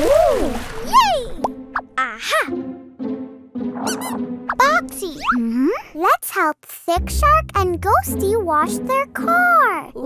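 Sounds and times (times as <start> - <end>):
cartoon background music: 0.8 - 10.0
squeaky swooping sound effects: 3.7 - 5.5.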